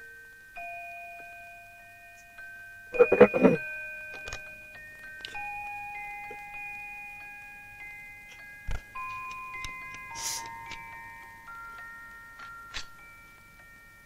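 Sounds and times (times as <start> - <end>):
clock chime tune: 0.3 - 14.0.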